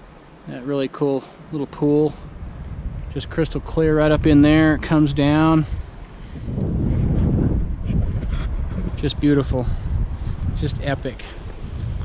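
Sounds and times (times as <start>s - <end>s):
wind buffeting microphone: 1.8s - 12.0s.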